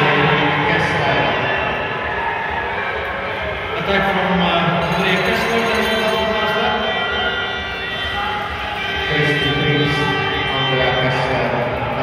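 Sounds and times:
spectators cheering and shouting: 0:00.0 - 0:12.0.

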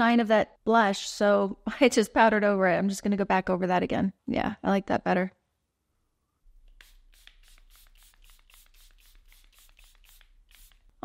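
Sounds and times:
spray bottle mist hisses: 0:06.5 - 0:11.0.

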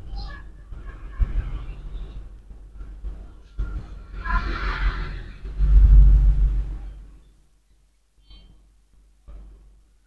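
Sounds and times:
loud low rumble: 0:03.6 - 0:07.2.

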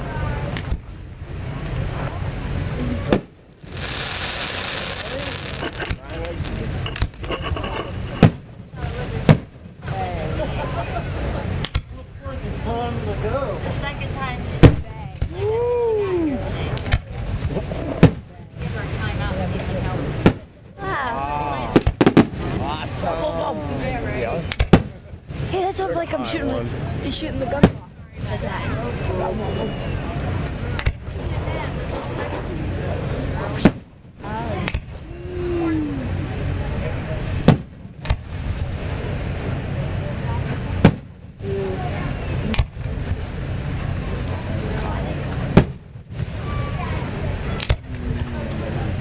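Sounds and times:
spectators talking: 0:00.0 - 0:49.0
fireworks bursting with sharp bangs: 0:00.4 - 0:10.4, 0:11.5 - 0:12.0, 0:13.9 - 0:15.4, 0:16.6 - 0:20.8, 0:21.7 - 0:23.0, 0:24.4 - 0:25.6, 0:26.9 - 0:35.1, 0:36.9 - 0:41.5, 0:42.1 - 0:49.0.

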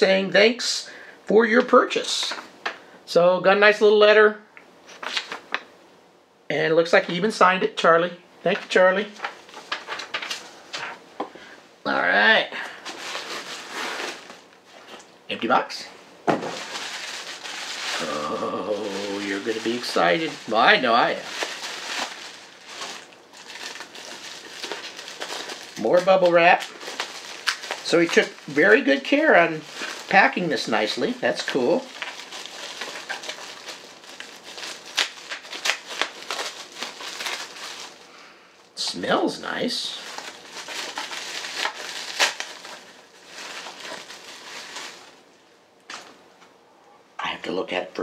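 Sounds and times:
bubble wrap crinkling: 0:08.5 - 0:11.0, 0:12.0 - 0:15.1, 0:16.2 - 0:38.2, 0:39.4 - 0:46.2.

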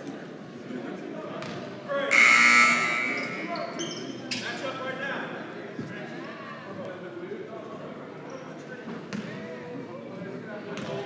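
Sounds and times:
scoreboard horn: 0:02.1 - 0:03.5.

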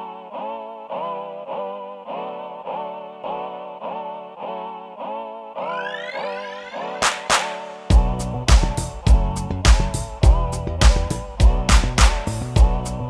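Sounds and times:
repeating synthesizer note: 0:05.6 - 0:07.9
rising synth sweep: 0:05.6 - 0:08.0.

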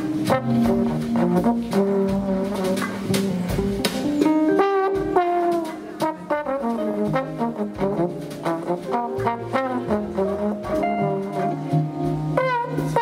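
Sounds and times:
bass: 0:00.0 - 0:13.0
cymbals: 0:00.0 - 0:13.0
trombone playing jazz: 0:00.0 - 0:13.0.

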